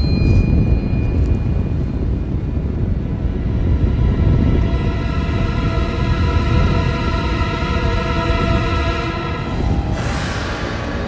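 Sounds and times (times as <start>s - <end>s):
loud deep rumble: 1.4s - 11.0s
ominous orchestral music: 2.8s - 11.0s.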